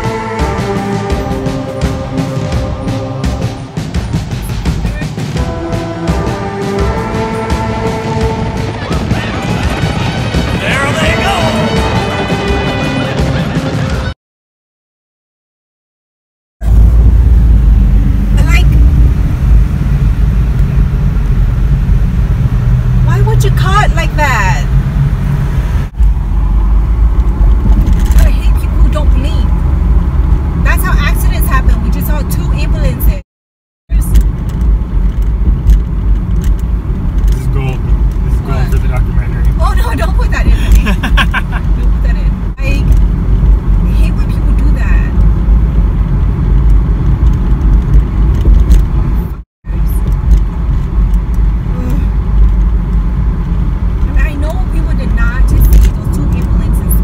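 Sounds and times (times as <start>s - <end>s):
car cabin road and engine rumble: 16.6s - 33.2s, 33.9s - 57.0s.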